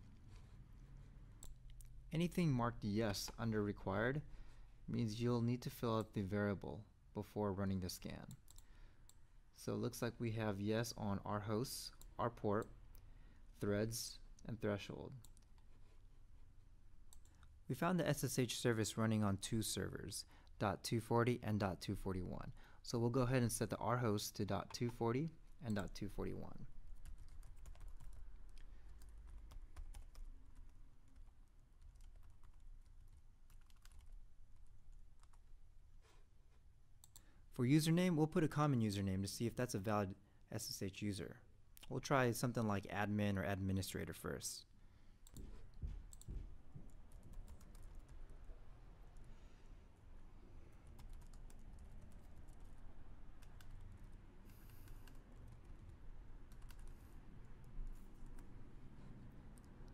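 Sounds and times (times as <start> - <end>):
low background hum: 0.0 - 59.9
keyboard typing: 25.6 - 35.5, 45.2 - 48.3, 50.7 - 58.6
keyboard typing clicks: 27.0 - 34.2, 50.8 - 52.8, 56.5 - 57.0.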